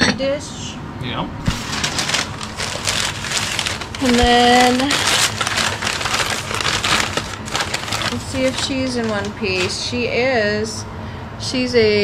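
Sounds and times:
packing paper rustling: 1.5s - 10.1s.

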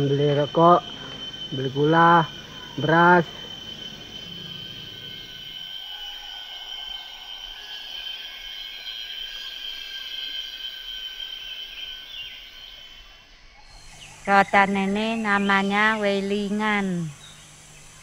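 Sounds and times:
insects droning: 0.0s - 18.0s.

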